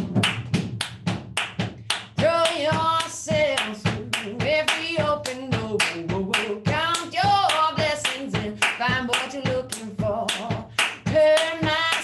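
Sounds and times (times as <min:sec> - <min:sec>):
hand claps: 0:00.0 - 0:12.0
woman singing: 0:02.1 - 0:12.0.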